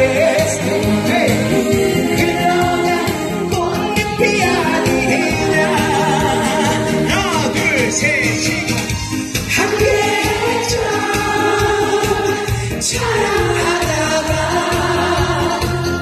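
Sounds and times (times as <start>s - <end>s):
man singing into microphone: 0.0s - 8.8s, 9.5s - 10.8s
instrumental backing track: 0.0s - 16.0s.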